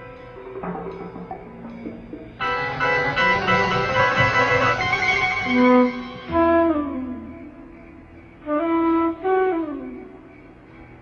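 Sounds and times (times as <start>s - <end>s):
horror film score with plucked strings: 0.0s - 11.0s.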